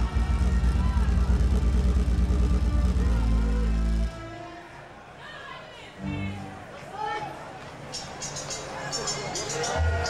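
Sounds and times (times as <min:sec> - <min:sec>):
heavy distorted bass: 0:00.0 - 0:04.4.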